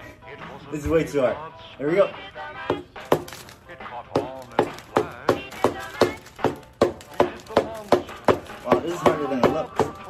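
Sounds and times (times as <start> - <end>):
wooden mallet knocking on chocolate: 2.7 - 3.4, 4.1 - 10.0
man talking: 8.6 - 10.0.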